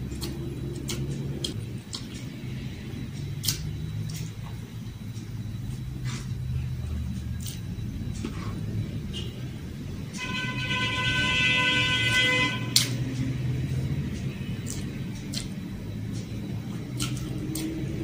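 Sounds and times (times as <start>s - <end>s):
eating clicks: 0.0s - 5.4s, 7.1s - 8.3s, 12.7s - 18.0s
low rumble of traffic: 0.0s - 18.0s
vehicle horn: 10.1s - 13.0s.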